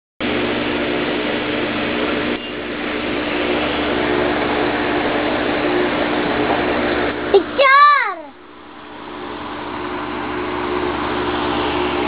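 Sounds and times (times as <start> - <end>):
machine hum: 0.2 - 12.0.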